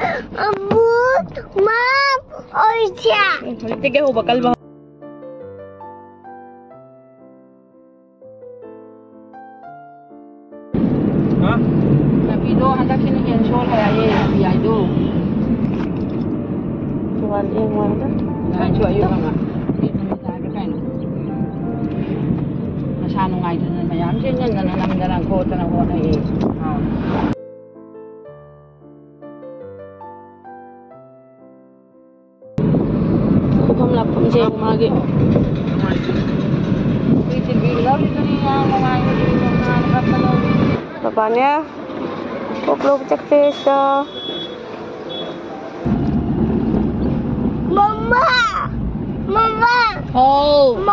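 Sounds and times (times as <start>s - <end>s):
car cabin road rumble: 10.8s - 27.4s, 32.6s - 40.8s, 45.8s - 50.9s.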